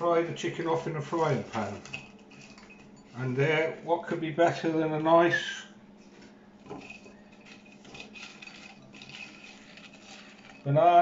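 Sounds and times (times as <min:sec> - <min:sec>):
steady low hum: 0:00.0 - 0:11.0
crockery knocks and scrapes: 0:06.6 - 0:10.6.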